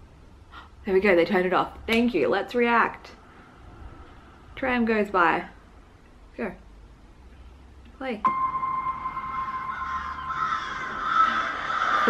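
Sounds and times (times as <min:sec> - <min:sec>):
crows cawing: 0:09.1 - 0:12.0.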